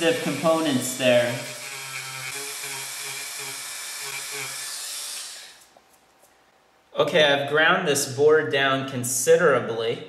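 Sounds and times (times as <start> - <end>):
rotary tool grinding: 0.0 - 5.7.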